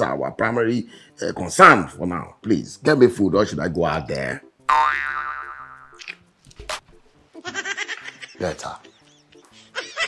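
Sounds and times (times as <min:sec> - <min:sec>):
cartoon boing: 0:04.7 - 0:06.0.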